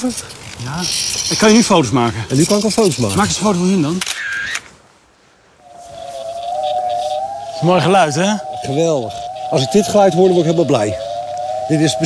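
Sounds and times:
camera shutter: 0:03.9 - 0:04.7.

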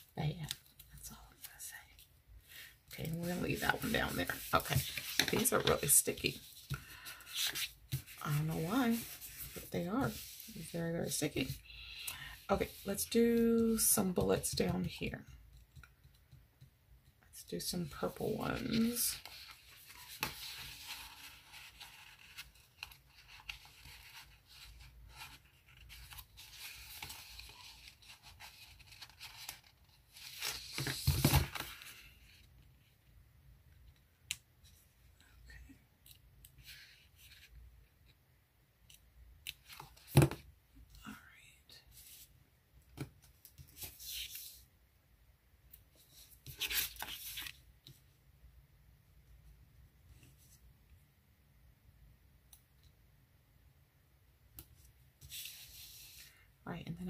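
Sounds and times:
paper sheets rustling: 0:03.0 - 0:10.7.

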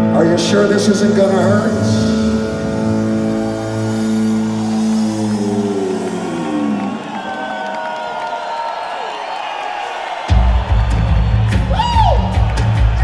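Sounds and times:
crowd cheering: 0:03.0 - 0:13.0.

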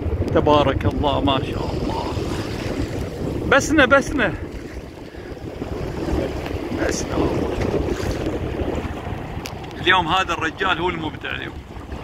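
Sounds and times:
wind buffeting microphone: 0:00.0 - 0:12.0
small waves lapping: 0:00.9 - 0:12.0.

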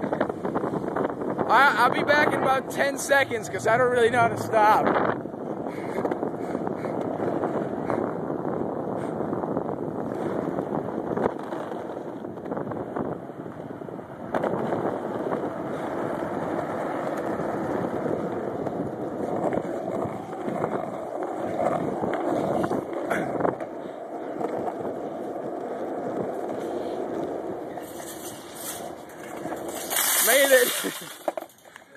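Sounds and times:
skateboard wheels rolling on asphalt: 0:00.0 - 0:31.9
skateboard clacks over cracks: 0:10.1 - 0:12.7, 0:14.2 - 0:31.9.

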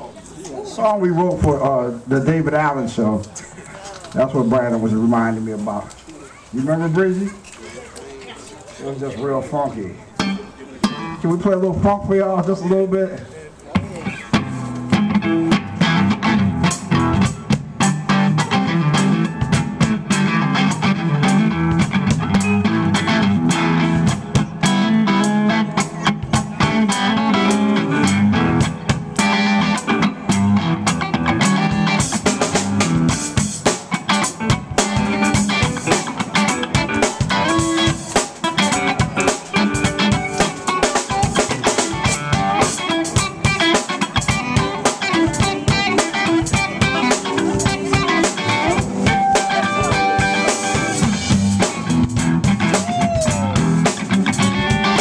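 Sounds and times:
funk band playing: 0:00.0 - 0:55.0
keyboard: 0:00.0 - 0:55.0
drum kit: 0:13.7 - 0:55.0
electric guitar: 0:13.7 - 0:55.0.

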